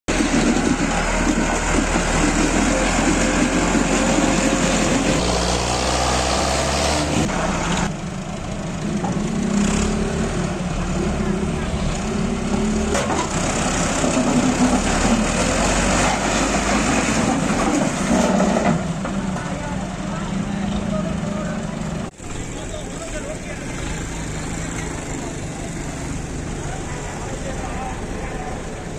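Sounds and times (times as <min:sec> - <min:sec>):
tractor engine running hard: 0:00.1 - 0:28.9
men talking: 0:19.3 - 0:24.0.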